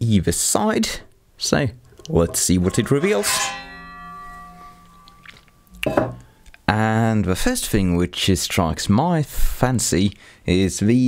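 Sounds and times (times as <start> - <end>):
chord of ringing tones: 2.0 - 6.5
short breath: 10.2 - 10.5.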